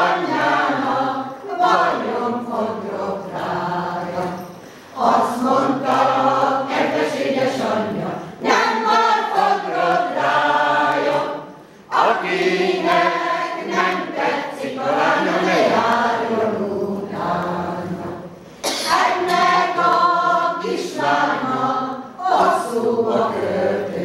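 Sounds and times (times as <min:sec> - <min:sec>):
women's choir singing: 0:00.0 - 0:24.0.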